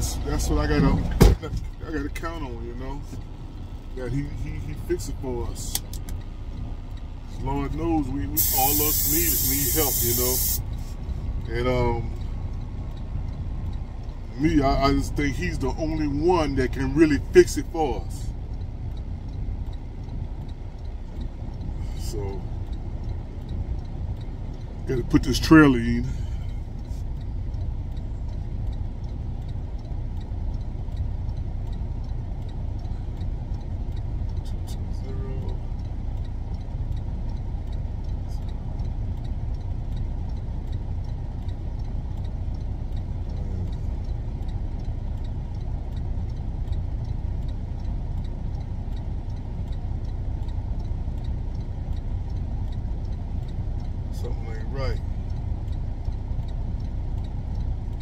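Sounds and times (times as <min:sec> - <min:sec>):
diesel truck engine running: 0:00.0 - 0:58.0.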